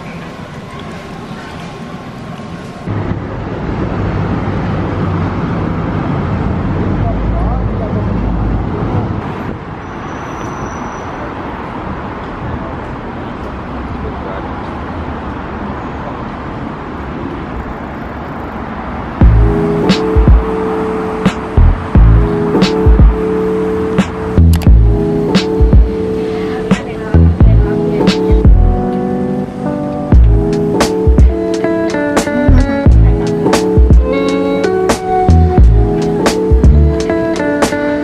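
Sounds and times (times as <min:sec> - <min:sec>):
people's voices: 0:00.0 - 0:03.2, 0:19.3 - 0:29.1, 0:30.2 - 0:38.0
traffic: 0:00.0 - 0:38.0
low rumble: 0:19.2 - 0:19.6, 0:21.6 - 0:22.3, 0:24.4 - 0:25.0, 0:27.2 - 0:27.7
background music with a beat: 0:19.2 - 0:23.4, 0:24.0 - 0:26.0, 0:26.7 - 0:29.1, 0:29.9 - 0:38.0.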